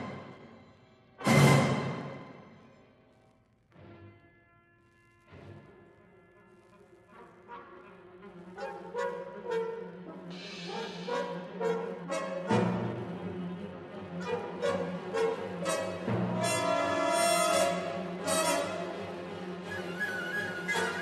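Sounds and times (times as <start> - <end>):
symphony orchestra playing: 10.3 - 21.0.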